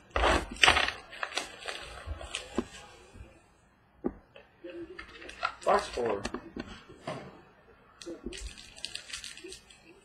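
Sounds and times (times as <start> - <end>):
packaging crinkling: 0.2 - 2.6, 8.0 - 10.0.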